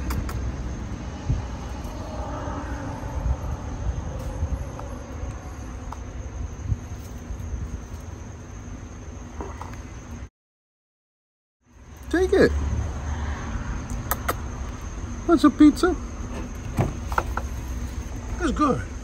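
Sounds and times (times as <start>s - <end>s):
low background rumble: 0.0s - 10.3s.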